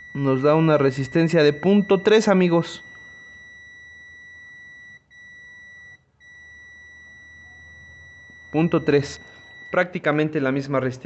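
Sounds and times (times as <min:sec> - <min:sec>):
multimeter continuity beep: 0:00.0 - 0:10.7.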